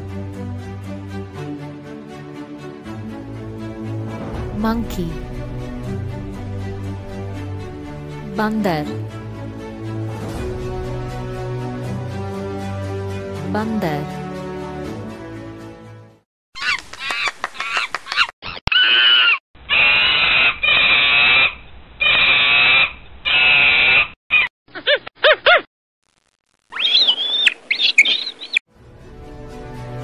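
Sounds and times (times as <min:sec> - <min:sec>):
monkey screeching and chattering: 0:16.6 - 0:25.6, 0:26.7 - 0:28.6.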